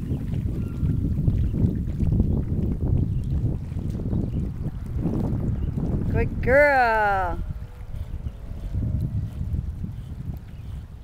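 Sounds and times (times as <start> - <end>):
dog paddling splashes: 0.0 - 11.0
wind buffeting microphone: 0.0 - 11.0.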